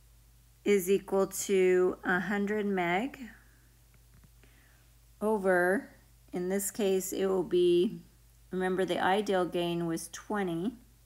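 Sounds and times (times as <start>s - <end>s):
low steady hum: 0.0s - 11.0s
woman speaking: 0.7s - 3.4s, 5.2s - 10.9s.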